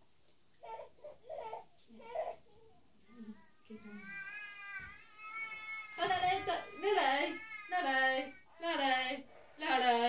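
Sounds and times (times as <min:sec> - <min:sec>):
electronic doll baby cries: 0:04.1 - 0:08.6.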